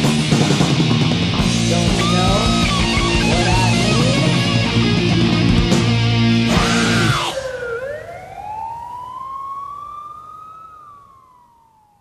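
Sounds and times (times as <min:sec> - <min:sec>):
siren wail: 0:01.9 - 0:05.6, 0:06.3 - 0:12.0.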